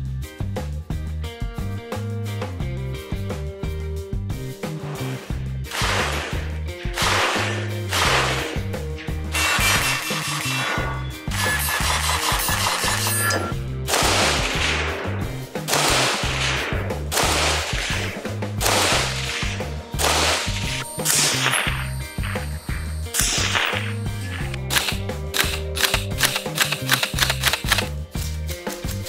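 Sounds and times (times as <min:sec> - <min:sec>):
pistol gunshots: 0:05.7 - 0:11.0, 0:13.9 - 0:21.7
music with heavy beat: 0:05.7 - 0:29.0.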